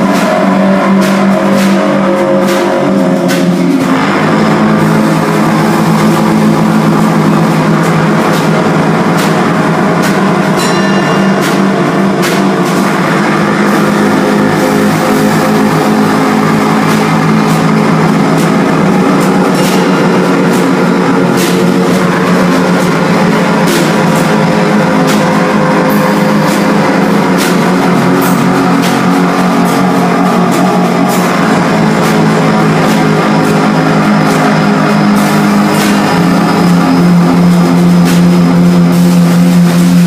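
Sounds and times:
cymbal strokes: 0.0 - 40.0
trumpet: 0.0 - 40.0.

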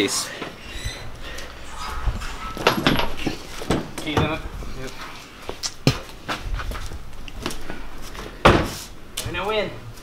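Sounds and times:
footsteps: 0.4 - 10.0
low rumble: 0.6 - 5.5, 6.3 - 9.2.

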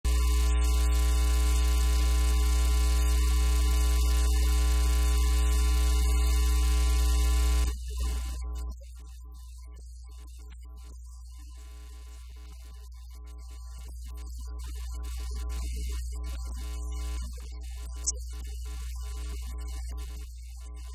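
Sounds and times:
electrical mains hum: 0.1 - 8.7.

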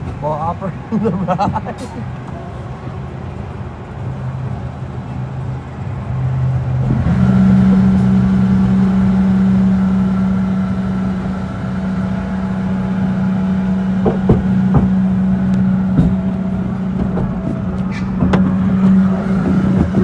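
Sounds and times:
ride machinery humming: 0.0 - 20.0
sharp clunks from ride: 14.0 - 18.9.

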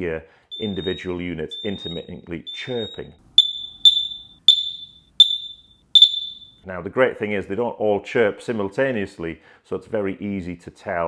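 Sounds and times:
smoke alarm chirps: 0.5 - 6.6.

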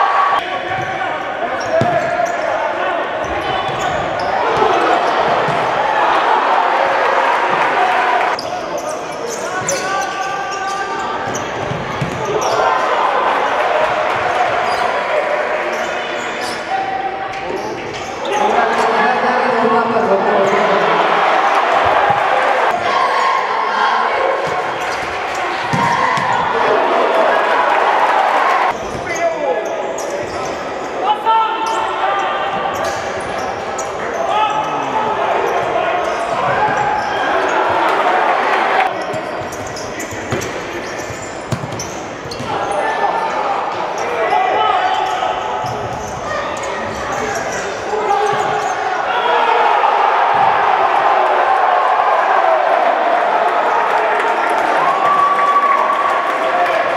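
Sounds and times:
people shouting in a hall: 0.0 - 40.8, 42.0 - 56.9
ball kicked and bouncing: 11.7 - 12.2, 25.7 - 26.3.

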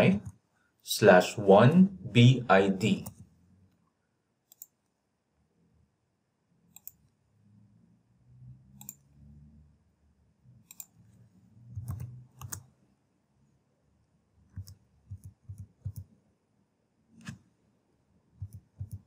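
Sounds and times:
computer mouse clicks: 4.5 - 4.9, 6.7 - 7.2, 8.8 - 9.1, 10.6 - 11.0, 11.7 - 12.7, 14.5 - 16.2, 17.2 - 17.5, 18.4 - 19.0.

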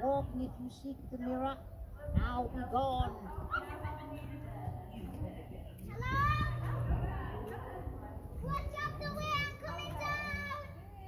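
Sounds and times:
child shouting: 5.9 - 6.7, 8.4 - 10.8.

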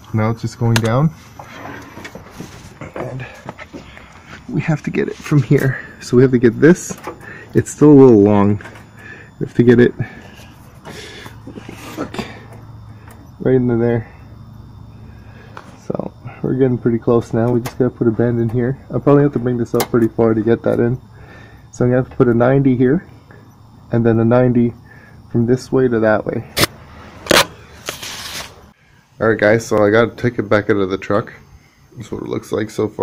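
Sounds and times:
low steady hum: 0.0 - 33.0
short hissing rustle: 27.7 - 28.7.

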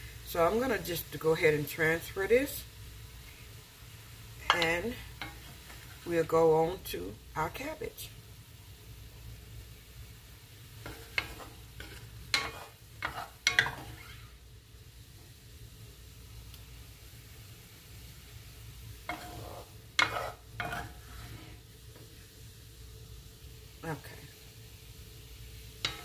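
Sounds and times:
faint sizzle: 0.0 - 26.0
spoon knocking and scraping pan: 4.4 - 6.0, 10.8 - 14.3, 19.0 - 22.1, 25.8 - 26.0.

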